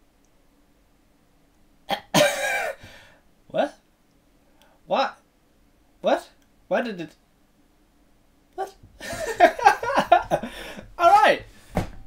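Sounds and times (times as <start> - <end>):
man laughing: 9.0 - 11.4.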